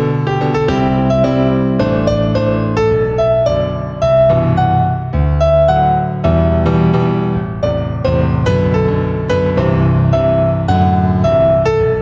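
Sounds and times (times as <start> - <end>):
piano piece: 0.0 - 12.0.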